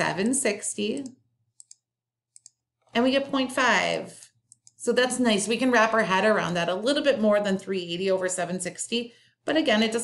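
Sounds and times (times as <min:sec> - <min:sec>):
computer mouse clicks: 0:00.8 - 0:02.7, 0:04.4 - 0:04.8.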